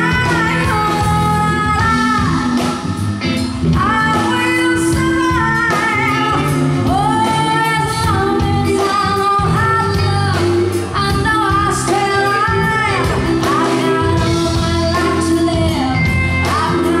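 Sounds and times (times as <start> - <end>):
woman singing into microphone: 0.0 - 17.0.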